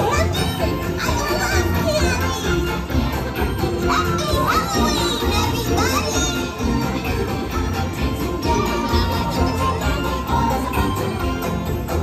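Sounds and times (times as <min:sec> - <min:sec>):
children's voices: 0:00.0 - 0:11.0
music with singing over pulsing bass: 0:00.0 - 0:12.0.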